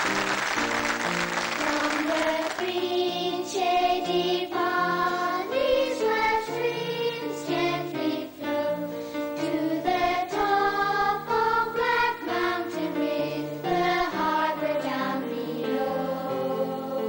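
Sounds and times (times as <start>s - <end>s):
children's choir singing: 0.0s - 17.0s.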